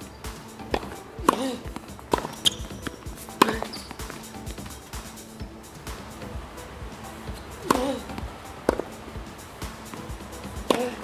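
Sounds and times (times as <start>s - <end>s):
racket hitting tennis ball: 0.0s - 5.1s, 5.7s - 11.0s
background music: 0.0s - 11.0s.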